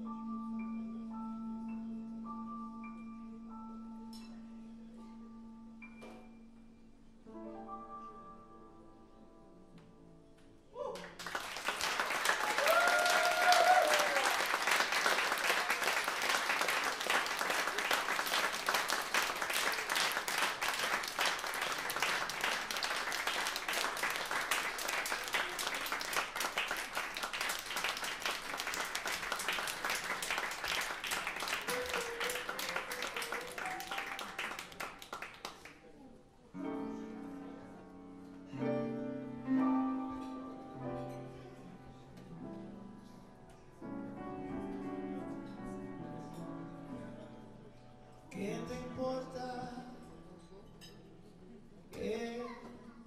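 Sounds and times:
short cheers: 10.7s - 11.2s, 12.2s - 14.7s
audience applauding: 11.0s - 35.8s.

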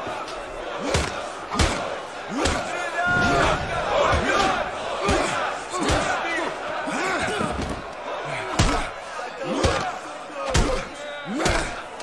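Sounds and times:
crowd of men shouting: 0.0s - 12.0s.

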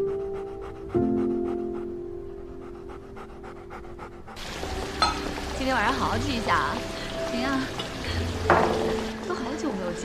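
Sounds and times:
dog panting: 0.0s - 4.6s
soft music with held notes: 0.0s - 10.0s.

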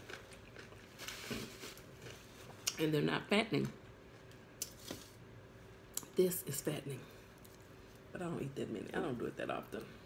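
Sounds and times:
food rustle: 0.0s - 2.7s, 4.6s - 5.2s.

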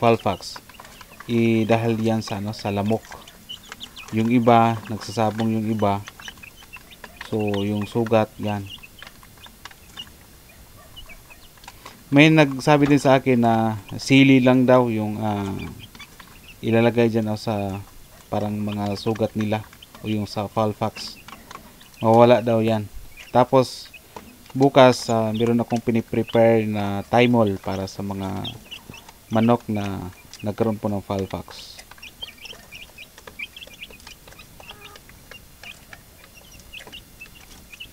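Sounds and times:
beaks tapping feeder: 0.0s - 37.9s
chicks peeping: 0.0s - 37.9s.

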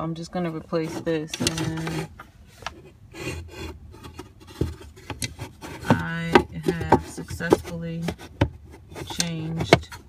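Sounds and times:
plastic scraping and rubbing: 0.2s - 10.0s.

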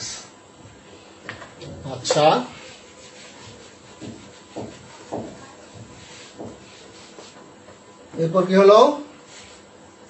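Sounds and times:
duster rubbing on whiteboard: 2.0s - 7.6s, 9.2s - 9.8s.

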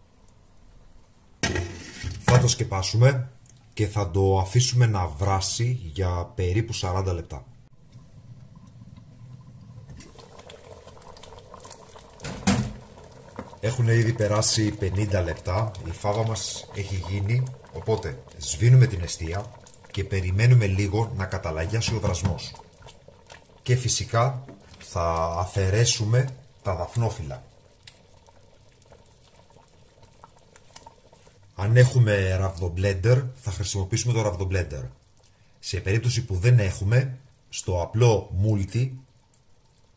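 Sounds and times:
thick mixture bubbling in a pot: 0.0s - 39.9s.

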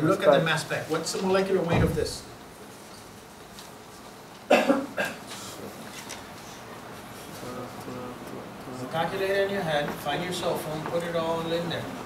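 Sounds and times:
person coughing: 4.5s - 5.2s.

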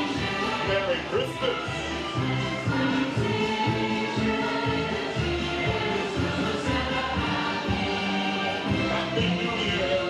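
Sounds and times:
choir singing a carol: 0.0s - 10.0s.

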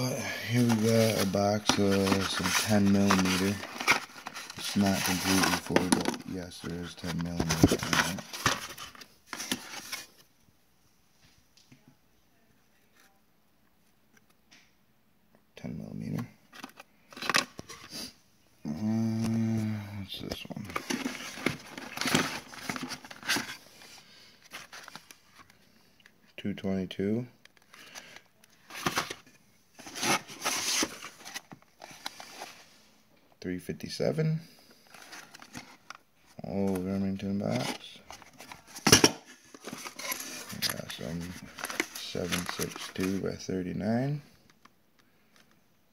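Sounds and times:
cardboard boxes rustling and scraping: 0.4s - 10.1s, 20.6s - 23.6s, 28.6s - 29.2s, 29.8s - 32.7s, 37.5s - 43.2s.

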